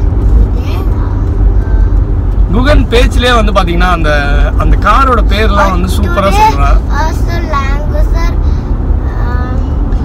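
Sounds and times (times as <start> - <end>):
car engine rumble: 0.0 - 10.0
road noise inside car: 0.0 - 10.0.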